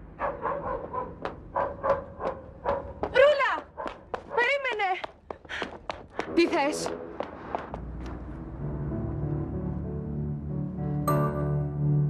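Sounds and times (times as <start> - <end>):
animal barking: 0.2 - 3.1.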